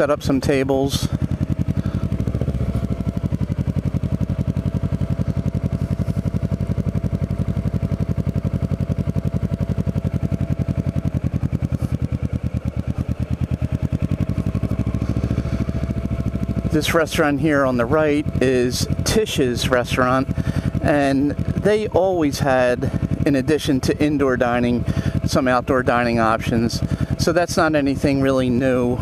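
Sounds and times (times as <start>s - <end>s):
motorcycle engine running: 0.0s - 29.0s.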